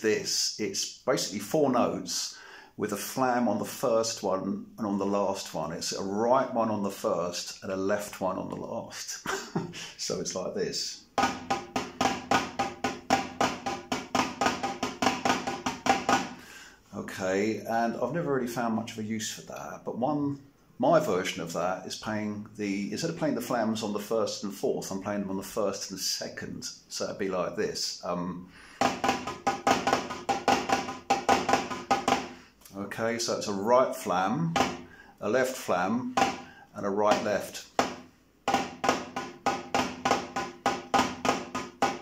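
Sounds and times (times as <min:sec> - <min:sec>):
drumsticks on electronic drum pad: 0:37.1 - 0:42.0.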